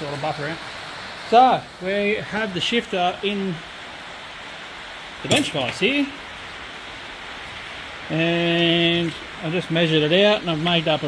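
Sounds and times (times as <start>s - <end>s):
workshop room hiss: 0.0s - 11.0s.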